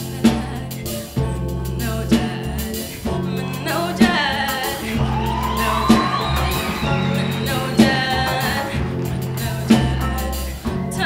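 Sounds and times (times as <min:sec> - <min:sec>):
bass: 0:00.0 - 0:11.0
woman singing: 0:00.0 - 0:11.0
drum beat: 0:02.2 - 0:11.0.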